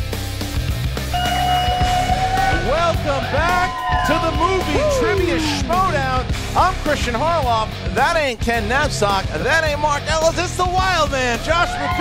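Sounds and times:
rock music with bending notes: 0.0s - 12.0s.

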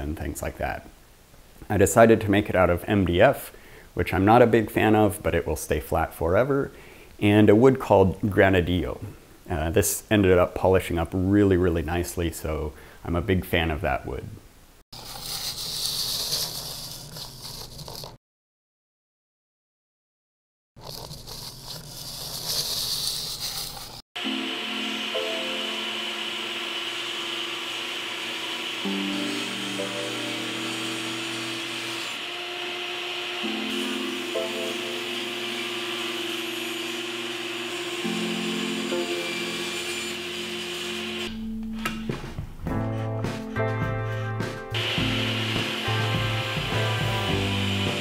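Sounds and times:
background music with held notes: 24.2s - 26.3s, 28.8s - 31.0s, 33.3s - 35.6s, 37.8s - 40.4s, 41.2s - 48.0s
table saw cutting wood: 24.2s - 41.4s, 44.1s - 48.0s.

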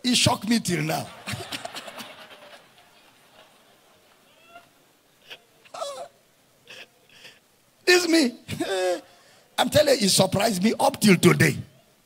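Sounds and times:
person breathing: 6.7s - 7.5s, 8.6s - 9.6s.

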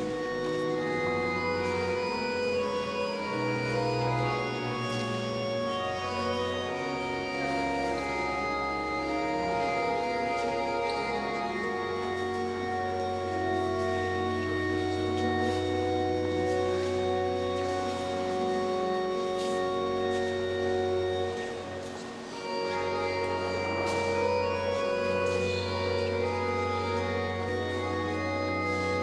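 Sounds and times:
church organ chords: 0.0s - 29.0s.

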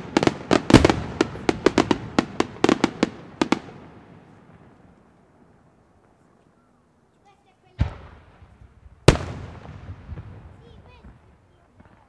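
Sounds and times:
rolling echo: 7.7s - 12.0s.

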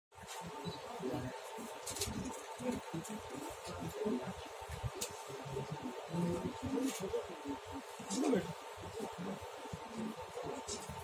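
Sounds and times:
indistinct room murmur: 0.2s - 11.0s.

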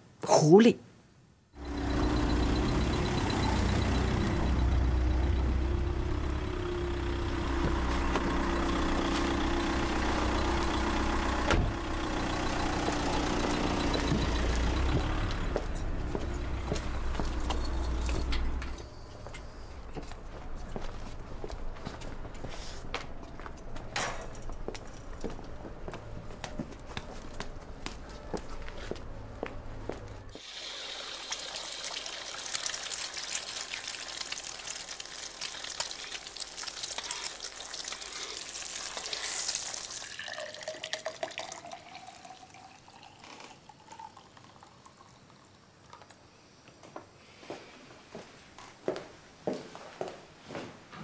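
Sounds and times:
car engine idling: 1.6s - 19.9s
egg sizzling in hot oil: 30.4s - 40.6s
milk pouring into a glass: 30.4s - 46.2s.

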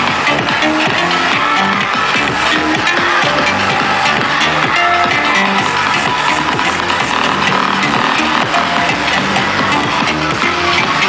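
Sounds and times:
electronic dance music over loudspeakers: 0.0s - 11.0s.

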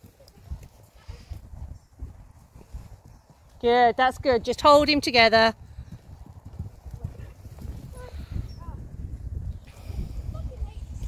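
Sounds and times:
horse hoofbeats on soft ground: 0.0s - 9.6s.

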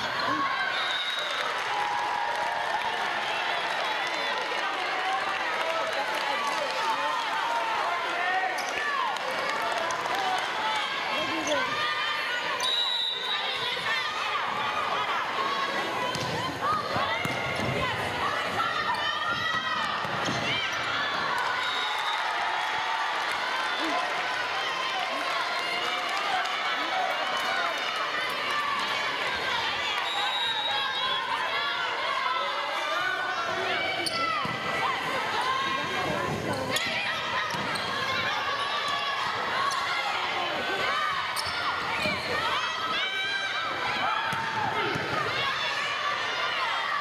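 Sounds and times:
spectators talking and calling out: 0.0s - 47.0s.

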